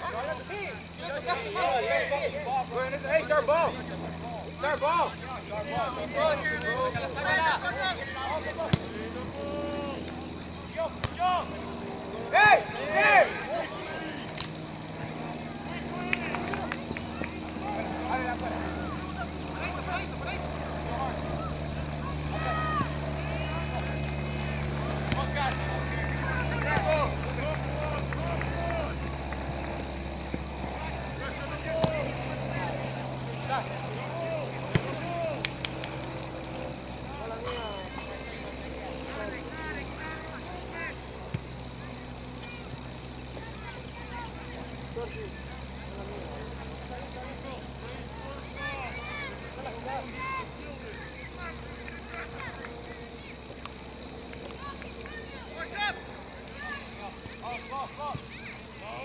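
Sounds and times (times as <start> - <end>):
distant players shouting: 0.0 - 59.0
low mechanical hum: 0.0 - 59.0.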